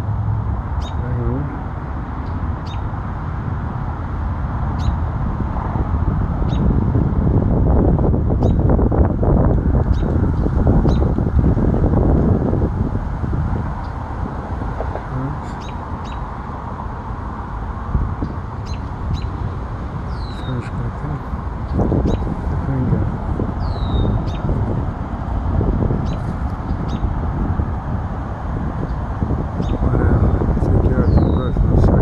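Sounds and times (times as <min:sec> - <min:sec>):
wind rumble on microphone: 0:00.0 - 0:32.0
high bird chirps: 0:00.8 - 0:01.0, 0:02.2 - 0:02.8, 0:15.4 - 0:16.2, 0:18.2 - 0:19.4, 0:20.1 - 0:20.6, 0:22.0 - 0:22.3, 0:23.6 - 0:24.5, 0:31.0 - 0:31.5.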